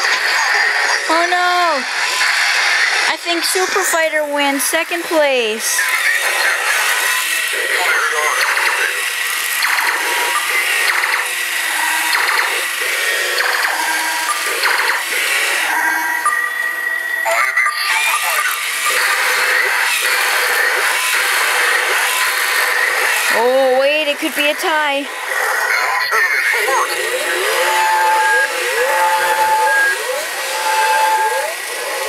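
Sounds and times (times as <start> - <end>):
toy robot voice phrases: 0.0 - 1.9, 3.1 - 10.9, 17.3 - 22.1, 23.0 - 32.0
toy robot electronic sound effects: 0.0 - 32.0
toy robot music: 0.0 - 32.0
clicking walking mechanisms: 6.2 - 16.4.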